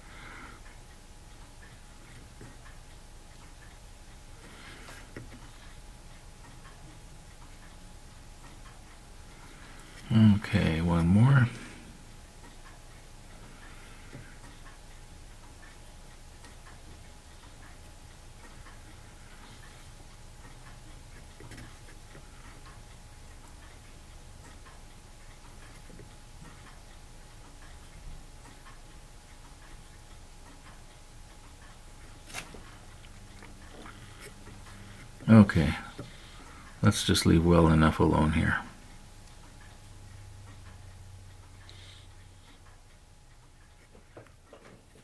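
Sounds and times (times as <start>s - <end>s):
faint steady hum: 0.0s - 45.0s.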